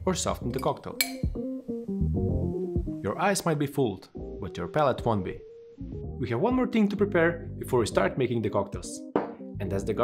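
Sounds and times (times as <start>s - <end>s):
plucked guitar and bass music: 0.4s - 3.0s.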